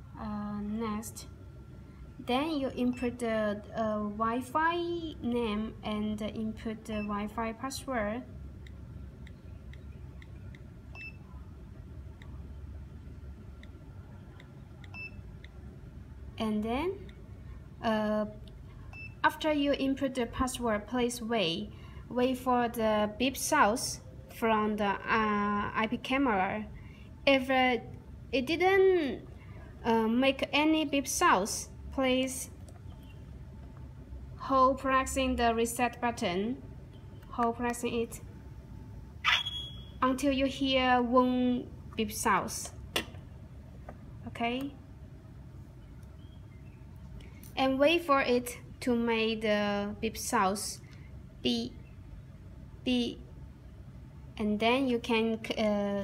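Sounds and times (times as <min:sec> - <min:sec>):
low steady hum: 0:00.0 - 0:56.0
high-pitched electronic beep: 0:39.2 - 0:40.0.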